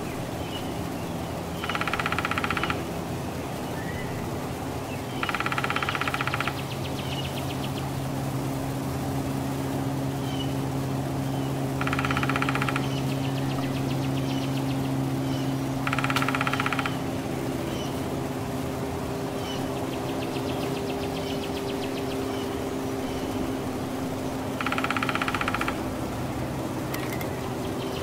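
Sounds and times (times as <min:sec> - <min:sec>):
steady low hum: 0:00.0 - 0:28.0
woodpecker drumming: 0:01.6 - 0:03.0, 0:05.2 - 0:07.2, 0:11.8 - 0:18.0, 0:24.4 - 0:28.0.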